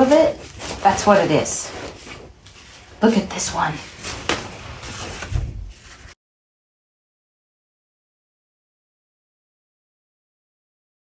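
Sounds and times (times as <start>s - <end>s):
paper rustling and crinkling: 0.0s - 6.2s.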